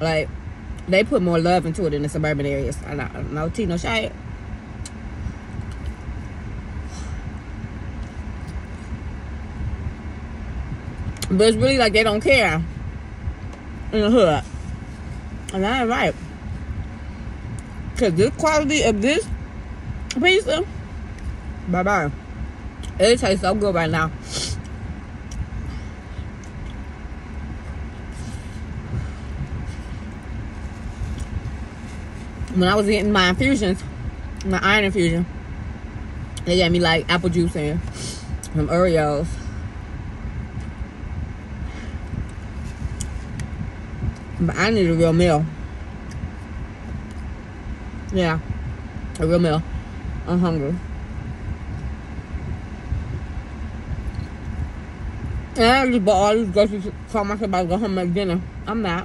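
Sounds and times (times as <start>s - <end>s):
car cabin rumble: 0.0s - 59.0s.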